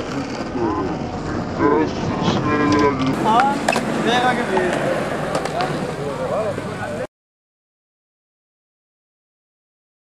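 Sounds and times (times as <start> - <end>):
outdoor background noise: 0.0 - 7.1.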